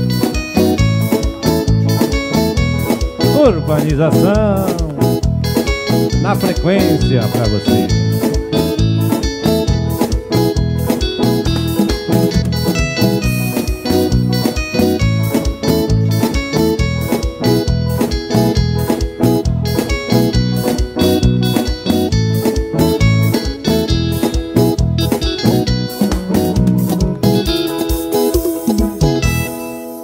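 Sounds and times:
electric guitar: 0:00.0 - 0:30.0
keyboard: 0:00.0 - 0:30.0
live band dance music: 0:00.0 - 0:30.0.

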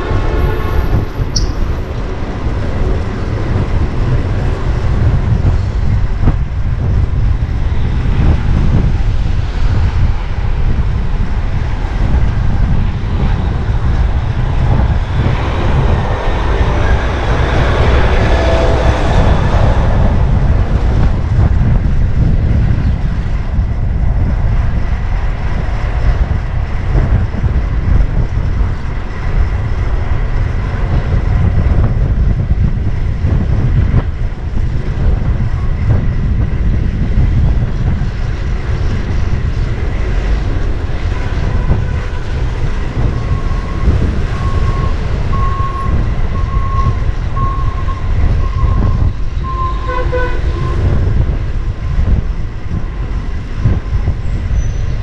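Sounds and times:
city traffic: 0:00.0 - 0:55.0
wind buffeting microphone: 0:00.0 - 0:55.0.

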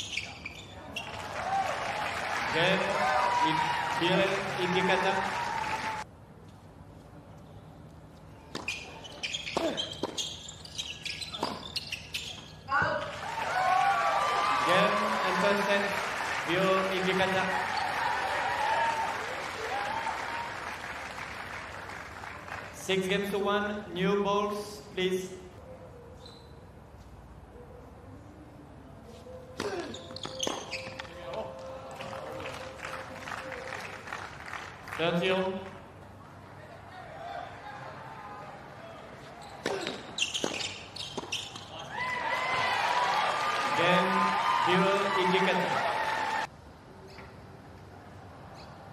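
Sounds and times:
spectators clapping: 0:01.0 - 0:06.1, 0:13.0 - 0:22.9, 0:31.6 - 0:35.3, 0:42.0 - 0:46.5
tennis ball bouncing on court: 0:08.5 - 0:10.3, 0:11.2 - 0:11.8, 0:39.6 - 0:41.7.

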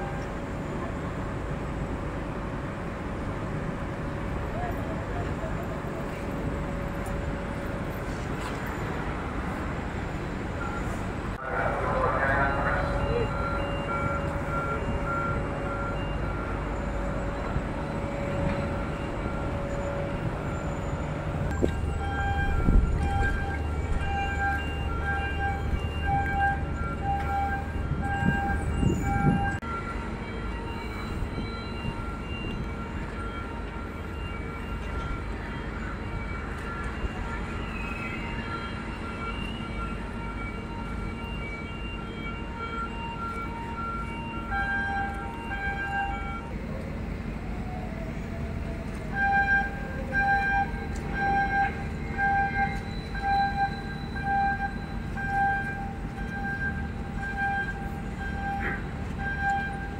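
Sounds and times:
faint voices: 0:11.4 - 0:14.0.

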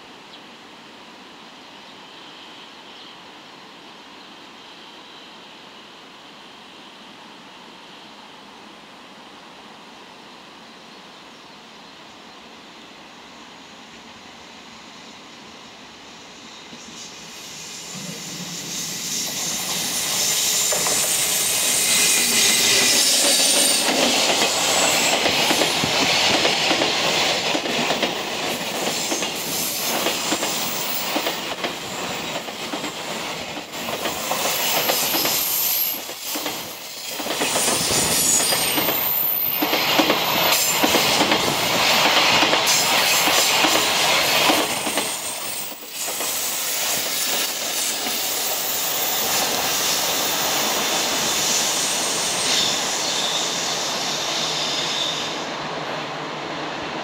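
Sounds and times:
train wheels rushing on rail: 0:12.4 - 0:57.0
high wheel squeal: 0:18.6 - 0:25.9, 0:34.5 - 0:39.6, 0:44.9 - 0:55.5.

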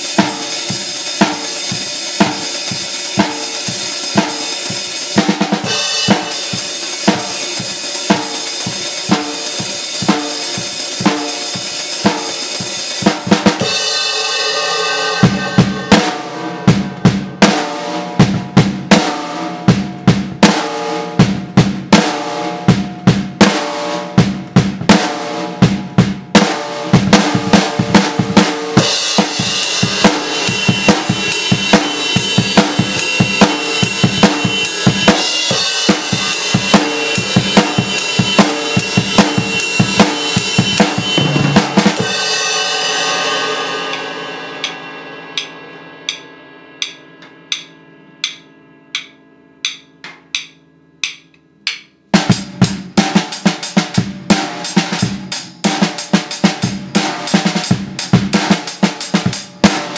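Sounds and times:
cymbal wash: 0:00.0 - 0:18.2, 0:28.8 - 0:51.3
drum kit playing rock beat: 0:00.0 - 0:59.9.

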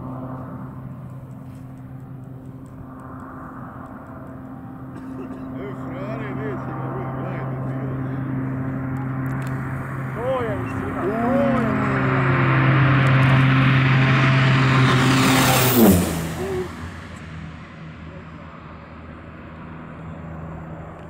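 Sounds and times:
turboprop aircraft passing low: 0:00.0 - 0:21.0.

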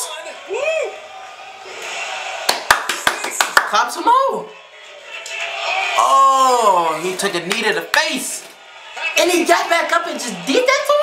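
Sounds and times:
arena crowd noise: 0:00.0 - 0:11.0
person clapping quickly: 0:02.5 - 0:03.8.

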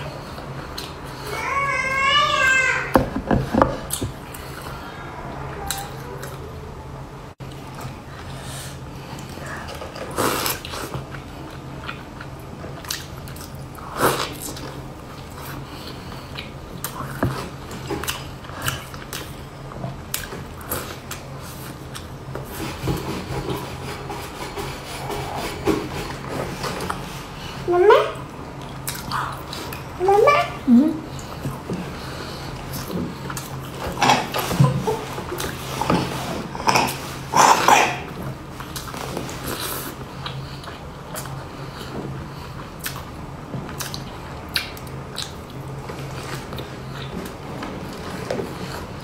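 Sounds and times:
close-up chewing: 0:28.6 - 0:30.0, 0:31.1 - 0:49.0.

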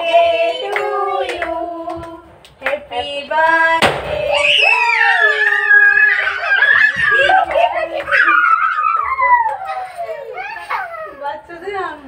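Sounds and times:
excited voices: 0:04.3 - 0:11.2
child squealing: 0:04.4 - 0:07.4, 0:08.1 - 0:11.3.

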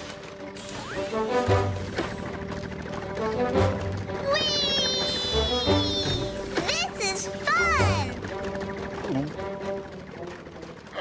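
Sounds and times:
cartoon music with light beat: 0:00.0 - 0:11.0.

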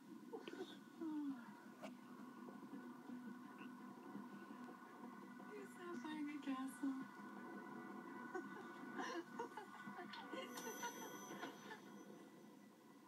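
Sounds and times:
soft music from television: 0:00.0 - 0:13.0.

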